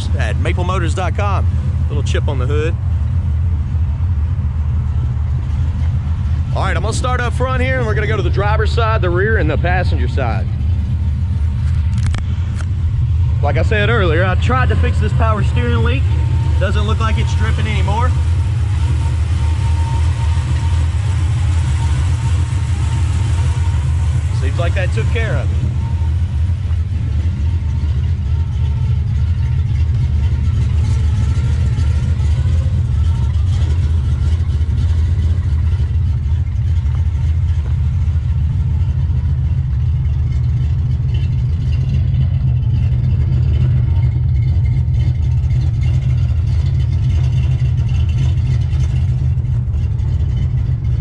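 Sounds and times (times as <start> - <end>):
car engine idling: 0.0 - 51.0.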